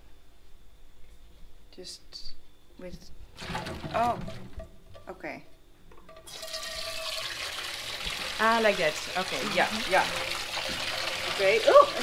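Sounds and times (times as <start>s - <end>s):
water pouring: 3.4s - 5.1s, 6.1s - 12.0s.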